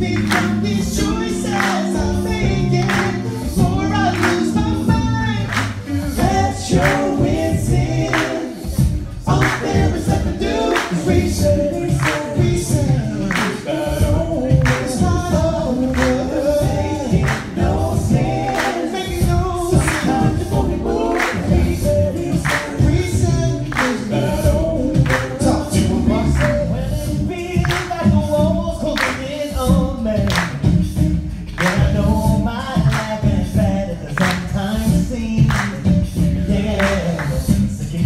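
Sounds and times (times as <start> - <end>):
male a cappella group singing: 0.0 - 38.0.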